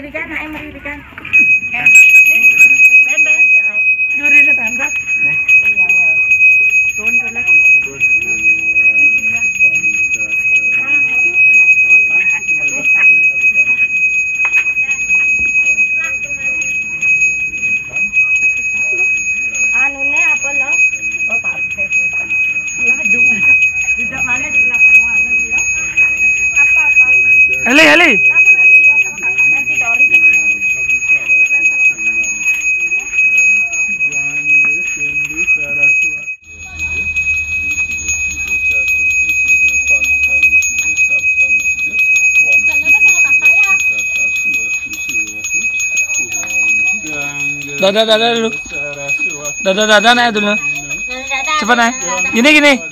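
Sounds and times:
people talking: 0.0 - 52.9
brass hand bell ringing: 1.3 - 52.9.

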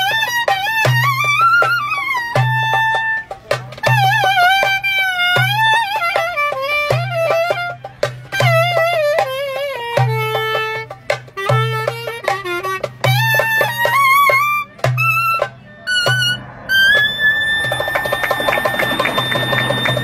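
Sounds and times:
clarinet folk melody: 0.0 - 20.0
fast clapping-like clicks: 17.6 - 20.0.

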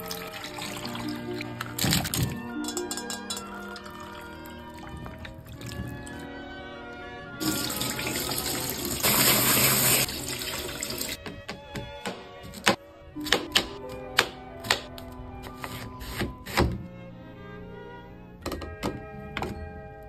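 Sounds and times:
water running and splashing: 0.0 - 2.2, 7.4 - 11.2
background music: 0.0 - 20.0.

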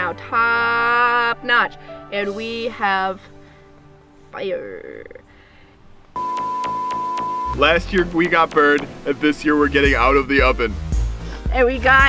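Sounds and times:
regular clicks: 6.0 - 9.1
test tone beep: 6.2 - 7.7.

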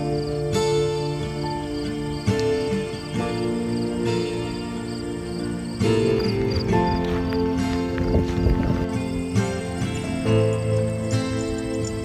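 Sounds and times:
slow held chords music: 0.0 - 12.0.

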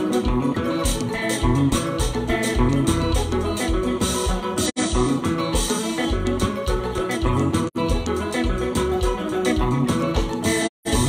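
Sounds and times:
electric guitar: 0.0 - 11.0
live dance band playing: 0.0 - 11.0.

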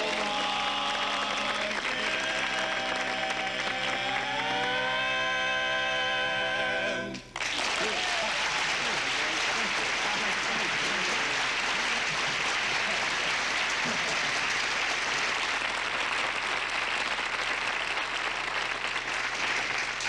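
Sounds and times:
audience applauding: 0.0 - 5.1, 7.1 - 20.0.

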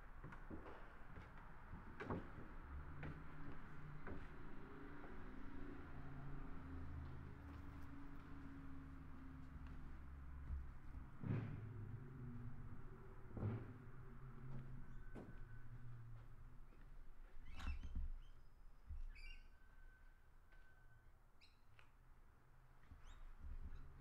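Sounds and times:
road traffic engine drone: 2.6 - 16.6.

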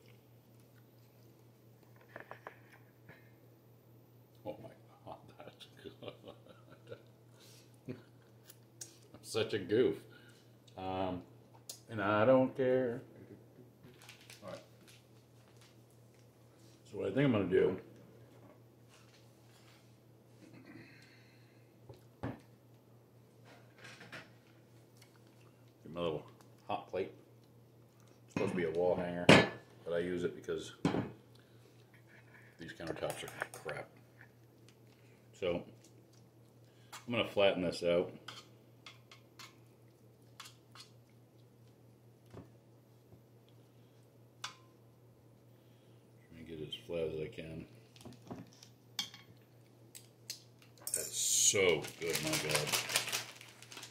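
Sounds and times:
food squishing: 24.4 - 28.7, 31.2 - 37.1, 38.2 - 45.5.

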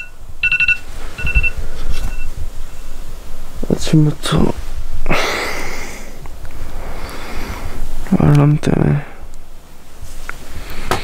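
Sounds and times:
phone alarm beeping: 0.0 - 2.9.

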